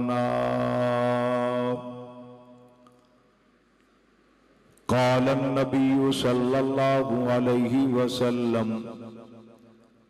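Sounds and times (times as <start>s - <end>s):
man chanting: 0.0s - 2.5s, 4.9s - 9.5s.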